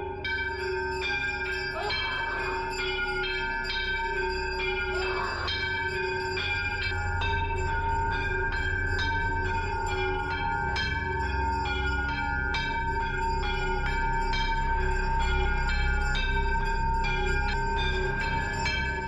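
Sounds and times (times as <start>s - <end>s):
temple bells ringing: 0.0s - 19.0s.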